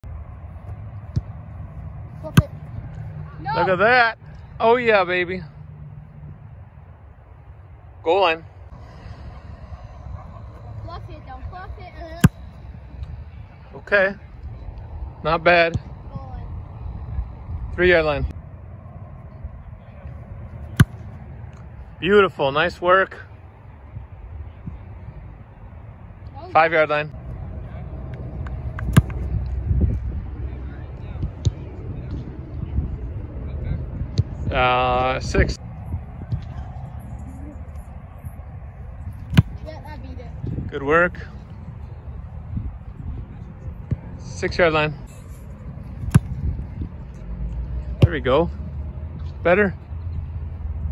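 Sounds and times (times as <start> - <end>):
outdoor background noise: 0.0 - 50.9
foot kicking football: 20.6 - 21.6, 28.7 - 29.3, 39.2 - 39.7, 46.0 - 46.7
low steady rumble: 23.2 - 50.9
foot kicking football thud: 28.8 - 29.2, 39.3 - 39.6, 46.0 - 46.5.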